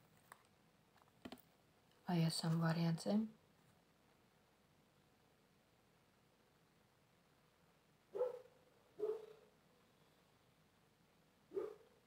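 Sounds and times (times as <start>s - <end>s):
dog barking: 8.1s - 9.5s, 11.5s - 12.0s.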